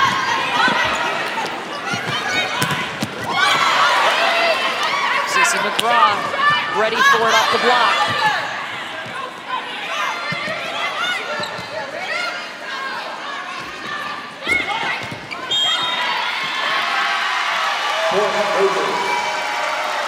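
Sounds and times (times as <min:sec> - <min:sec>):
arena crowd murmur: 0:00.0 - 0:20.0
sneakers squeaking on hardwood: 0:11.2 - 0:11.8
crowd cheering and applauding: 0:16.2 - 0:20.0.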